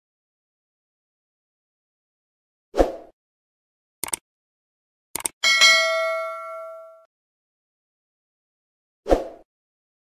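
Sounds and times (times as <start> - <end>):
mouse clicks: 4.0 - 4.2
notification bell ding: 5.4 - 7.1.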